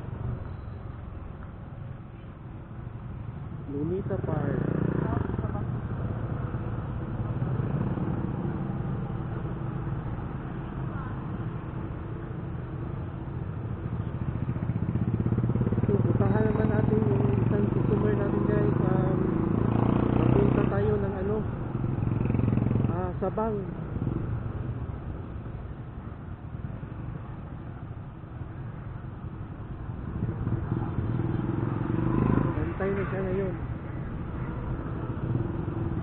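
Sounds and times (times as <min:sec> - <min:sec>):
road and wind noise: 0:00.0 - 0:36.0.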